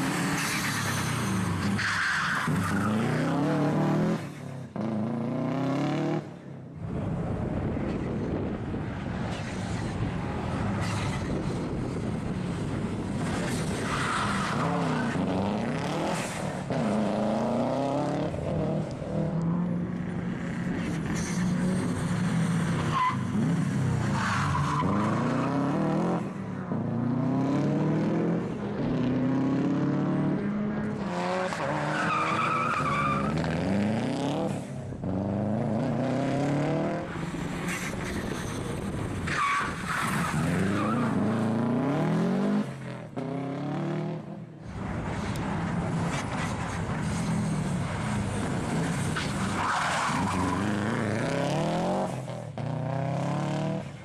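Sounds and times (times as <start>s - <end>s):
rally car engine revving: 26.9s - 53.9s.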